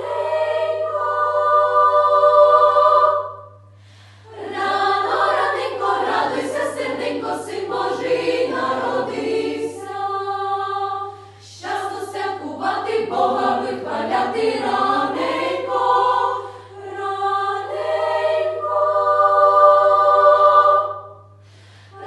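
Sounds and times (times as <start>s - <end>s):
children's choir singing: 0.0s - 3.6s, 4.3s - 21.3s
steady low hum: 0.0s - 22.0s.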